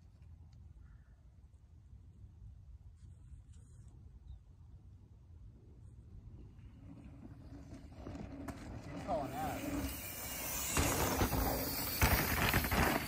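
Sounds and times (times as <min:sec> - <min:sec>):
bike tyres crunching on dirt: 0:06.5 - 0:13.0.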